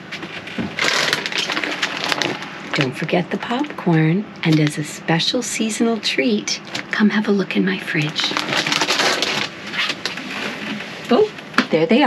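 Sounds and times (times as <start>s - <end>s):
plastic bag crinkling: 0.3s - 3.6s, 8.0s - 10.9s.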